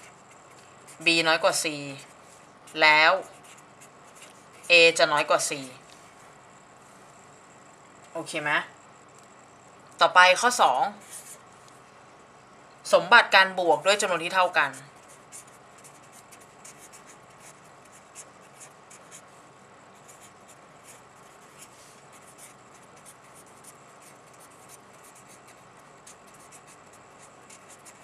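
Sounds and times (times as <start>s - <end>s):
pen scratching on paper: 0.0s - 1.2s, 2.7s - 5.0s, 11.0s - 11.4s, 14.7s - 19.2s, 20.0s - 28.0s.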